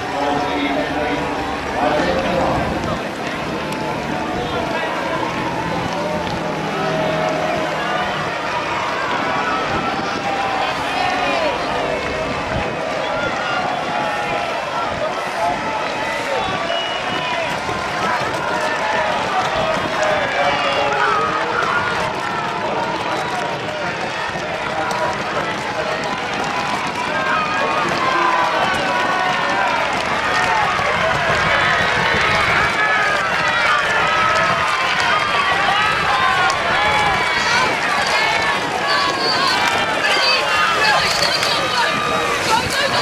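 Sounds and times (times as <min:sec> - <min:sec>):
crowd shouting and cheering: 0:00.0 - 0:43.0.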